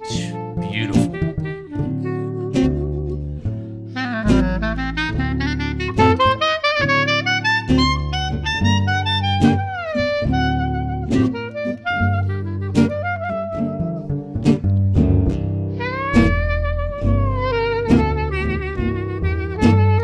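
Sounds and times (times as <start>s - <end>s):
strummed acoustic guitar: 0.0s - 4.4s, 9.4s - 18.9s
clarinet melody: 0.0s - 14.6s, 15.7s - 20.0s
upright bass notes: 0.0s - 20.0s.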